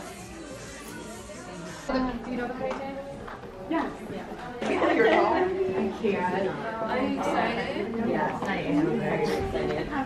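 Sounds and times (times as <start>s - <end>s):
women chattering: 0.0s - 10.0s.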